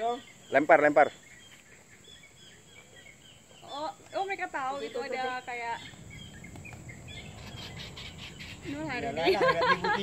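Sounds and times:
high bird chirps: 0.0s - 9.0s.

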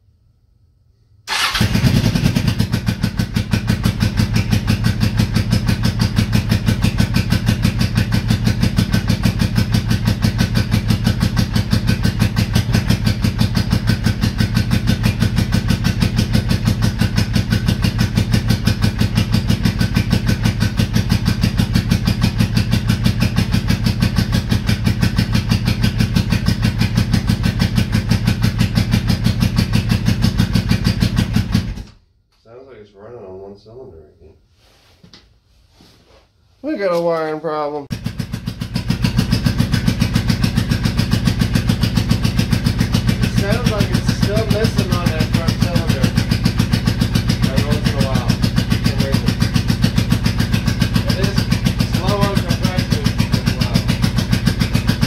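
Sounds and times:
motorcycle engine running: 1.3s - 31.9s, 37.9s - 55.0s.

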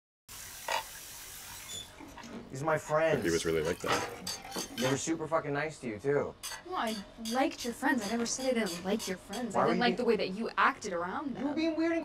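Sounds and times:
tap water running into sink: 0.3s - 2.5s, 3.2s - 4.9s.

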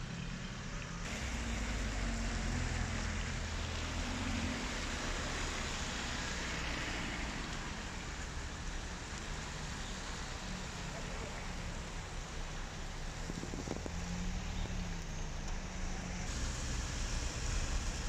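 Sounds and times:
car engines rumbling: 0.0s - 18.0s
tyres on wet asphalt: 0.0s - 18.0s
rain hissing: 1.0s - 18.0s.

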